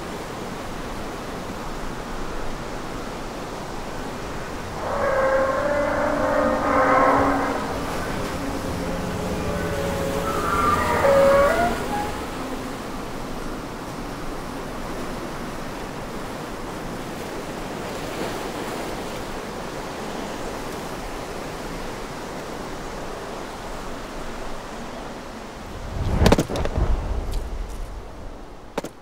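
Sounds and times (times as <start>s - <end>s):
rushing surf: 0.0s - 29.0s
iron gate creaking: 3.8s - 13.4s.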